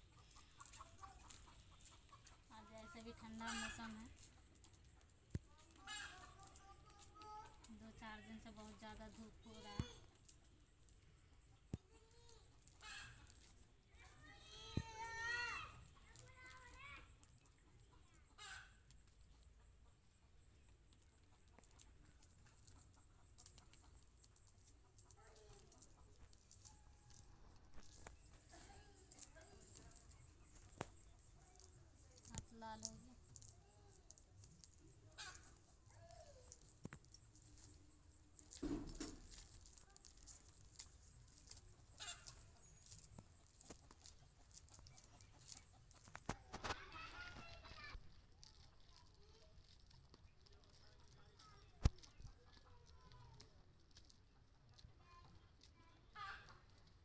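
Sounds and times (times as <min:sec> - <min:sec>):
chicken clucking: 0:00.0 - 0:06.7, 0:12.7 - 0:13.6, 0:15.8 - 0:33.5, 0:34.6 - 0:36.0, 0:40.1 - 0:47.8
maize kernels being stripped: 0:00.3 - 0:19.4, 0:20.5 - 0:57.0.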